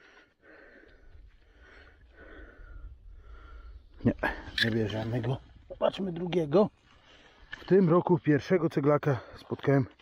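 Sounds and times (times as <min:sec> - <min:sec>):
man breathing heavily: 0:00.0 - 0:04.4.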